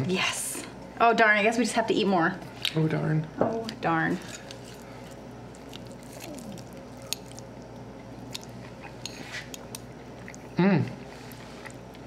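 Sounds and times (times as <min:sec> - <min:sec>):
low room hum: 0:00.0 - 0:12.0
soft chewing: 0:03.6 - 0:12.0
forks scraping on plates: 0:09.0 - 0:09.6.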